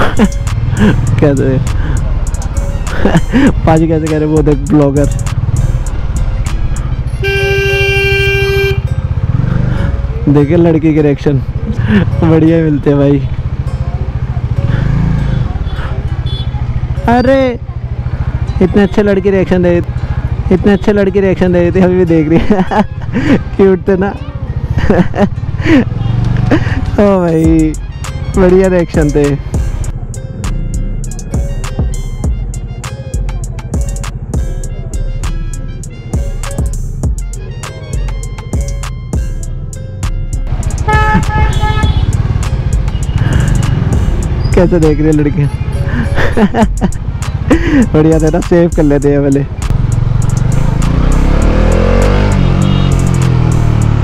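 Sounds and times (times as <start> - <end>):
motorcycle engine at low revs: 0.0 - 7.1, 7.8 - 30.0, 40.4 - 45.3, 45.9 - 54.0
background music with beat: 0.0 - 7.3, 27.4 - 45.3, 45.9 - 54.0
vehicle horn beeping: 6.3 - 9.0, 15.6 - 16.8, 40.5 - 42.3, 42.9 - 44.5, 51.9 - 53.2.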